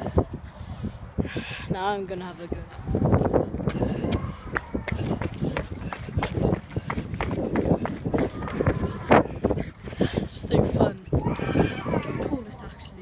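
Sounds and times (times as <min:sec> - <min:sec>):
footsteps running on stone steps: 0:03.6 - 0:11.4.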